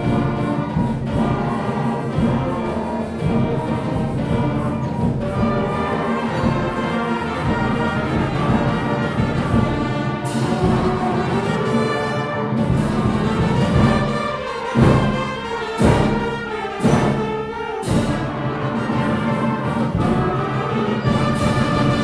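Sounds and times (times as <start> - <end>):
concert band playing carol: 0.0 - 22.0.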